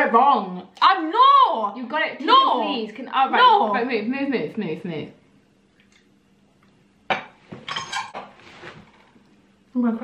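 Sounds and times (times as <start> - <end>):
glassware clinking on a desk: 7.1 - 8.2.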